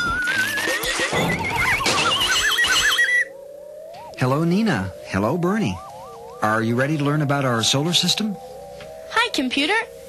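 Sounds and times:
rising warbling electronic tones: 0:00.0 - 0:10.0.

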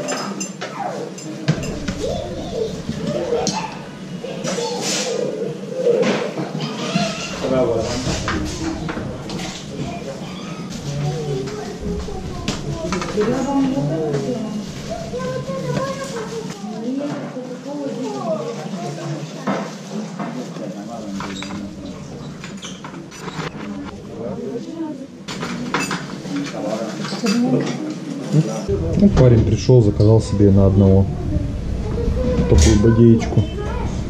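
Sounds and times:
metal bowl and utensils clinking: 0:00.0 - 0:04.6, 0:25.3 - 0:27.8
indistinct voices talking: 0:00.8 - 0:16.9, 0:21.0 - 0:26.5, 0:28.6 - 0:34.0.

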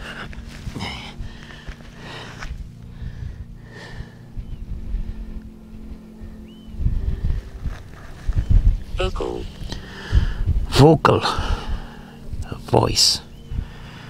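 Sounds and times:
low engine hum: 0:00.0 - 0:14.0
wind buffeting microphone: 0:00.0 - 0:14.0.

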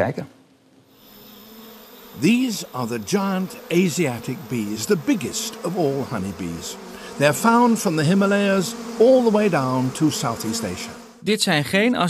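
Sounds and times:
honeybees buzzing: 0:00.3 - 0:11.2.

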